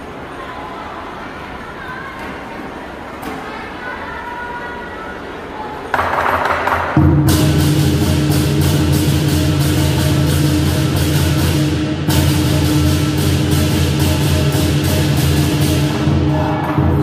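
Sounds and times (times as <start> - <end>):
big drum beating: 6.0 - 17.0
cymbals crashing: 6.0 - 17.0.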